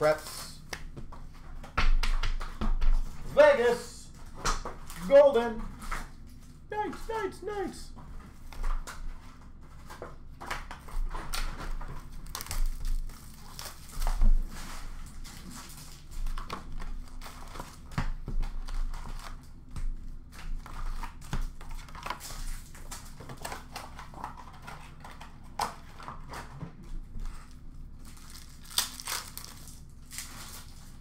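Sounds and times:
wrappers crinkling: 0:11.3 - 0:17.9, 0:27.3 - 0:31.0.

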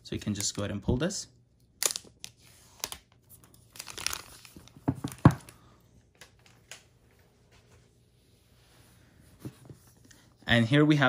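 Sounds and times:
plastic film crinkling and tearing: 0:03.7 - 0:04.8.

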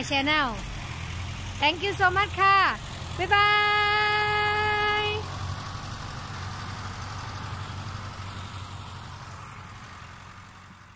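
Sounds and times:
tractor engines running: 0:00.0 - 0:10.9.

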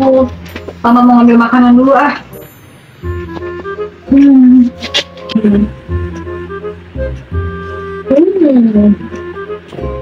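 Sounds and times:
background music: 0:00.0 - 0:10.0
woman humming while eating: 0:04.1 - 0:06.2.

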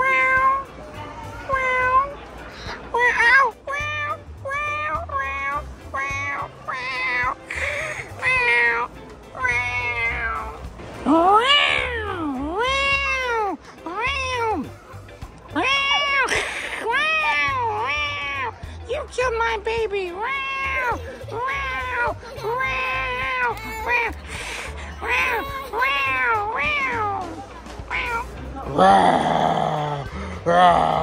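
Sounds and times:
high-pitched meowing: 0:03.0 - 0:07.4, 0:08.2 - 0:10.6, 0:15.6 - 0:16.3, 0:16.9 - 0:18.6, 0:20.2 - 0:24.2, 0:24.9 - 0:27.3, 0:27.9 - 0:29.7.

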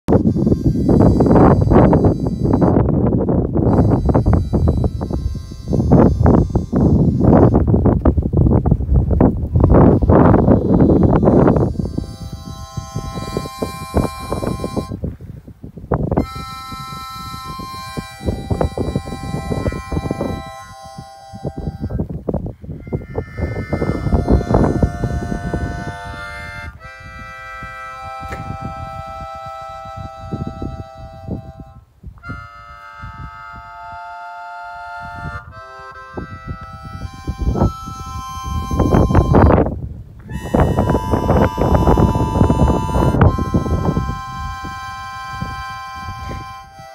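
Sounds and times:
free-reed instrument playing chords: 0:00.1 - 0:15.2, 0:16.0 - 0:46.9
wind buffeting microphone: 0:00.1 - 0:46.9.

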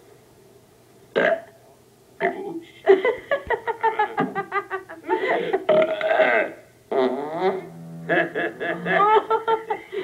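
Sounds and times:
comic belches: 0:01.1 - 0:01.6, 0:05.7 - 0:08.9.

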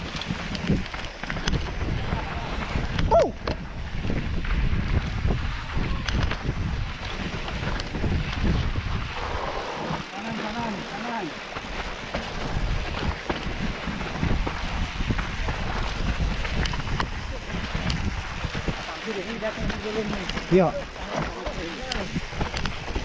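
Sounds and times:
bike rumbling on dirt trail: 0:00.0 - 0:23.0
wind buffeting microphone: 0:00.0 - 0:23.0
voice: 0:10.1 - 0:11.3, 0:18.8 - 0:22.1.

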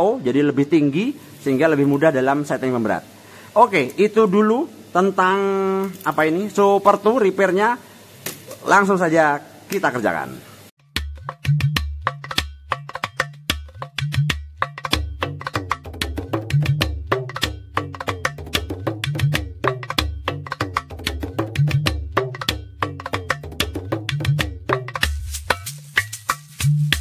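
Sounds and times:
percussion-led music track: 0:10.8 - 0:27.0.

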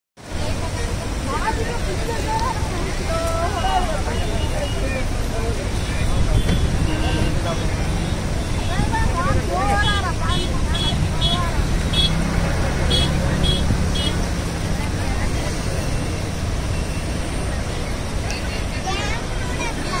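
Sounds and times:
floodwater roaring: 0:00.2 - 0:20.0.

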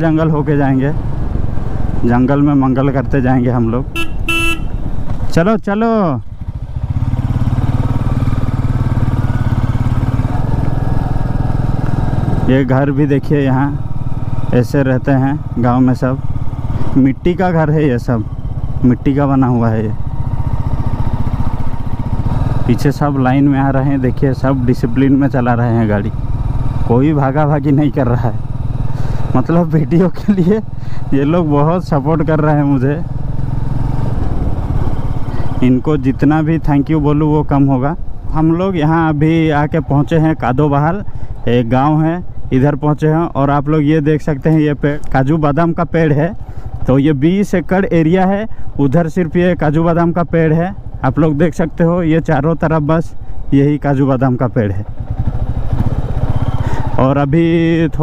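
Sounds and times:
motorcycle engine cruising: 0:00.0 - 0:58.0
wind and road noise: 0:00.0 - 0:58.0.

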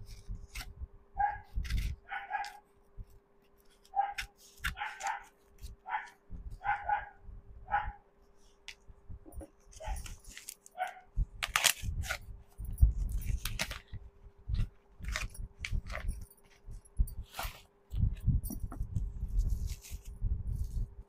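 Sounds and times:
dog barking: 0:01.2 - 0:01.5, 0:02.1 - 0:02.6, 0:04.0 - 0:08.0, 0:10.8 - 0:11.1
scissors snipping paper: 0:01.5 - 0:02.7, 0:03.5 - 0:06.2, 0:09.7 - 0:12.2, 0:13.1 - 0:16.7
paper rustling: 0:03.4 - 0:06.2, 0:09.6 - 0:12.2, 0:12.9 - 0:17.7, 0:19.3 - 0:20.9.

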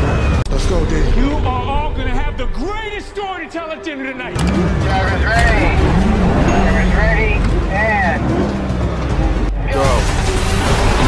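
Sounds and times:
trailer music: 0:00.0 - 0:11.0
car engine noise: 0:03.7 - 0:11.0.

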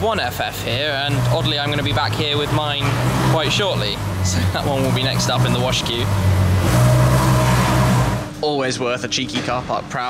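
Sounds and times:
car engine running at low revs: 0:00.0 - 0:08.4.

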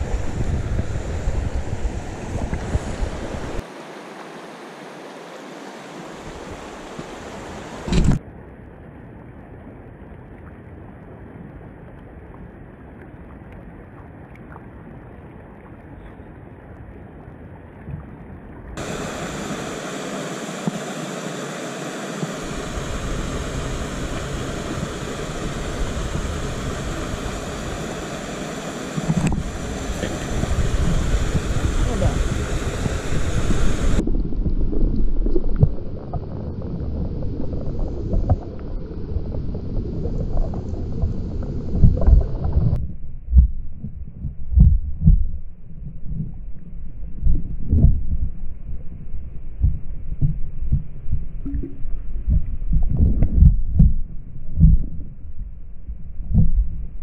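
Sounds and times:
stream rushing over rocks: 0:00.0 - 0:08.2, 0:18.8 - 0:42.8
muffled underwater water sound: 0:00.0 - 0:57.0
low underwater thuds and knocks: 0:34.4 - 0:46.4, 0:47.2 - 0:48.3, 0:49.6 - 0:55.2, 0:55.9 - 0:56.8.

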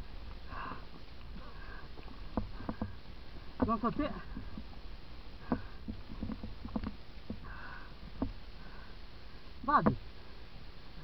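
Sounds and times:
person breathing hard through nose: 0:00.5 - 0:03.0, 0:07.4 - 0:09.4.

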